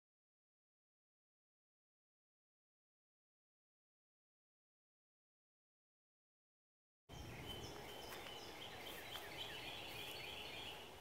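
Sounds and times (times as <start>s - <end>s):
small birds chirping: 7.1s - 11.0s.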